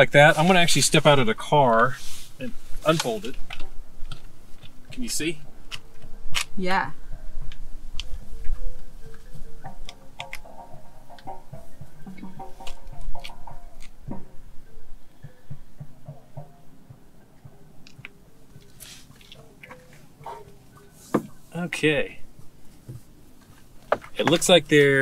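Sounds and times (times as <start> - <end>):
low thumps: 0.9 - 24.6.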